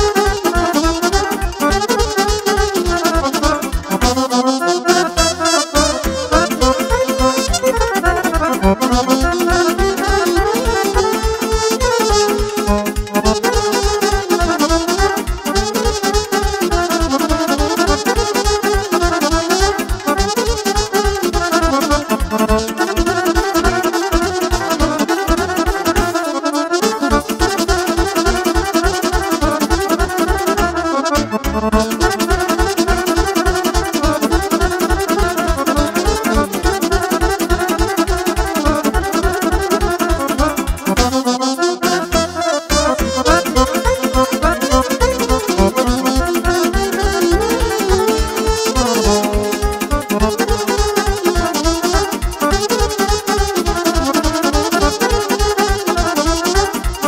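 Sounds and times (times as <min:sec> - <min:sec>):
accordion fast melody: 0:00.0 - 0:57.0
driving dance beat: 0:00.0 - 0:57.0
saxophone: 0:00.0 - 0:57.0.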